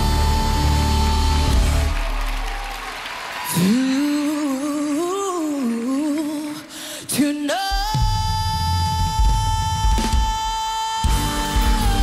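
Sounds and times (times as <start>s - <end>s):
band with heavy bass and drums: 0.0s - 2.5s, 7.7s - 12.0s.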